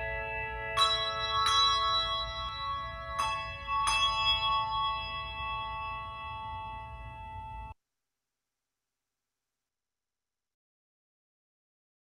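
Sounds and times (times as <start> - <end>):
handbell chords ringing: 0.0 - 7.6.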